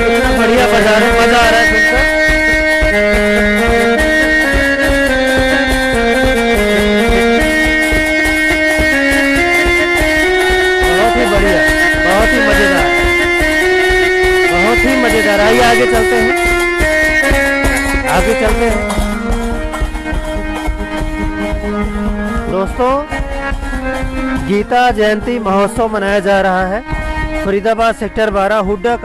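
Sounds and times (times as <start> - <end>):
keyboard melody of held notes: 0.0 - 29.0
large drums beating: 0.0 - 29.0.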